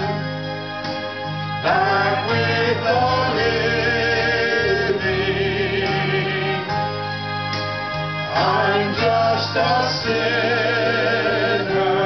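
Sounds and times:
gospel quartet singing in harmony: 0:00.0 - 0:12.0
keyboard accompaniment: 0:00.0 - 0:12.0.

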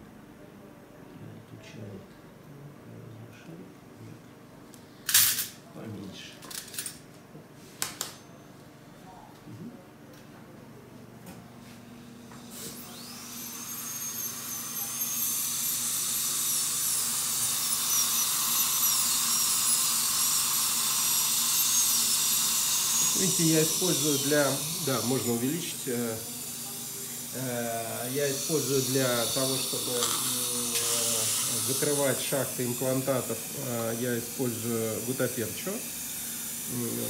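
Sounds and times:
dental drill whine: 0:12.1 - 0:37.0.

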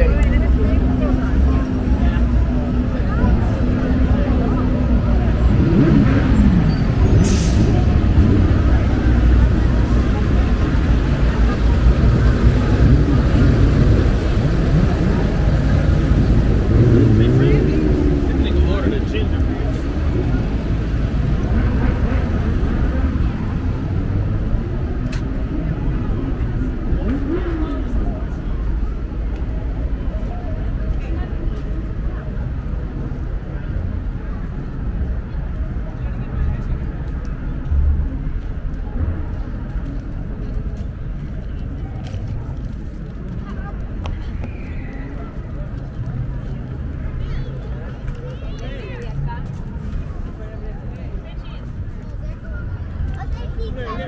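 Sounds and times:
people talking: 0:00.0 - 0:54.0
traffic rumble: 0:00.0 - 0:54.0.

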